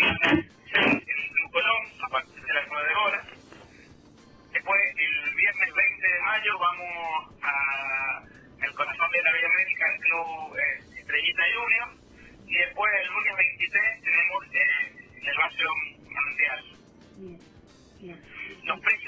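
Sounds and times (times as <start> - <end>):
man talking over phone line: 0.0 - 3.5, 4.6 - 16.8, 18.4 - 19.0.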